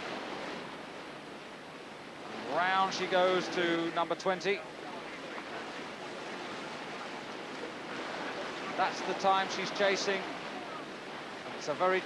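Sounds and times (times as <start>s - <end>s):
turbulent whitewater rushing: 0.0s - 12.0s.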